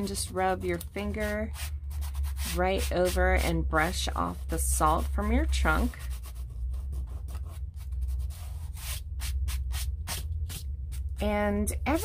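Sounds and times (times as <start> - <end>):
fingers rubbing on paper: 0.1 - 11.2.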